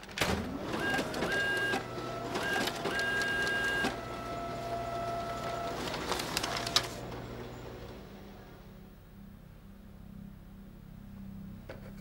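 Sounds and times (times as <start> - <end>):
photocopier whirring: 0.0 - 8.9
photocopier click: 0.2 - 7.2.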